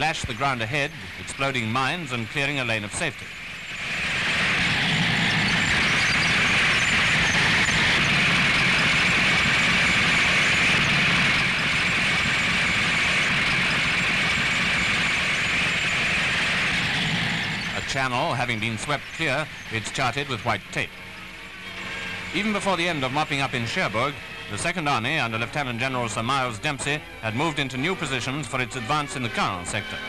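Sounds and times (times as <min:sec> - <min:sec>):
flail tank running: 0:00.0 - 0:30.0.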